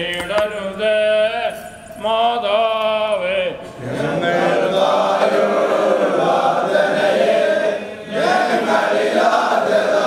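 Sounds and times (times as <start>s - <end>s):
voices chanting a hymn: 0.0s - 10.0s.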